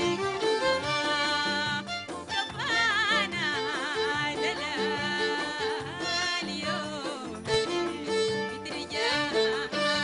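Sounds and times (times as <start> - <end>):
instrumental backing: 0.0 - 10.0
woman singing: 0.0 - 10.0.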